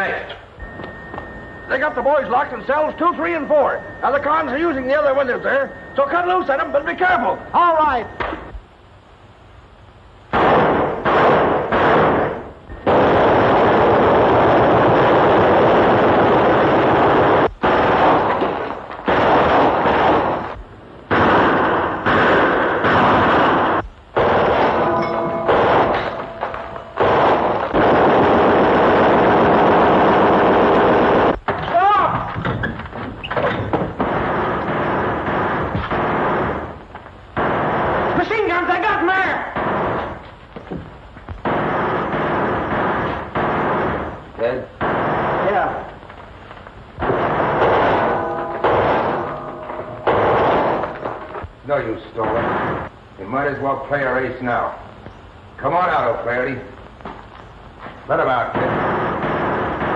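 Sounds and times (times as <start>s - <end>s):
machine-gun fire: 10.3s - 32.2s, 33.6s - 40.2s, 41.4s - 45.9s, 47.0s - 52.9s, 58.2s - 59.9s.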